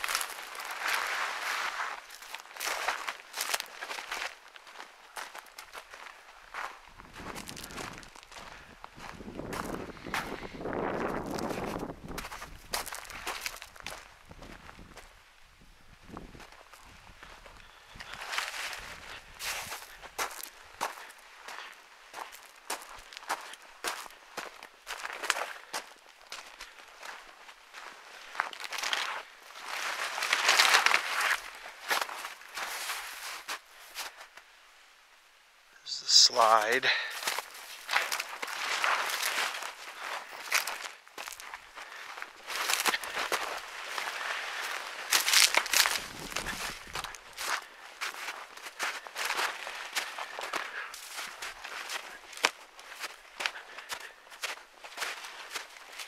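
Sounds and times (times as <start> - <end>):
rustling of stems: 0.0 - 9.1, 26.4 - 34.4, 37.1 - 56.0
footsteps through dry brush: 0.0 - 15.3, 15.9 - 34.5, 35.9 - 56.0.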